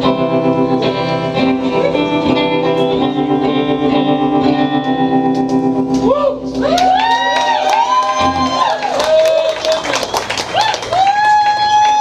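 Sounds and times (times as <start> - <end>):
audience clapping: 5.4 - 12.0
audience cheering: 6.0 - 12.0
long held whoop: 6.0 - 12.0.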